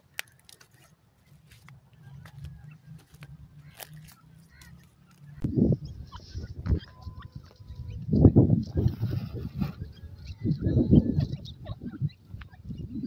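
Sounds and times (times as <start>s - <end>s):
wind buffeting microphone: 5.3s - 13.0s.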